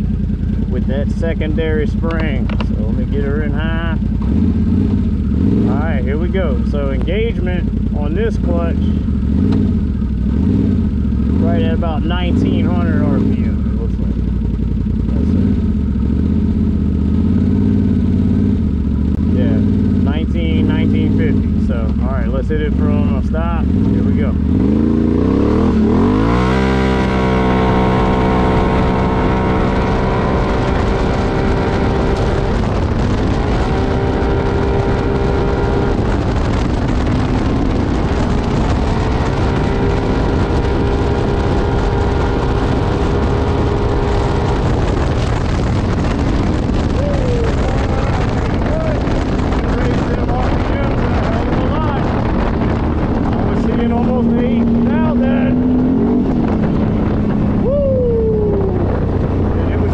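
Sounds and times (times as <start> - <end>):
atv engine idling and revving: 0.0 - 59.9.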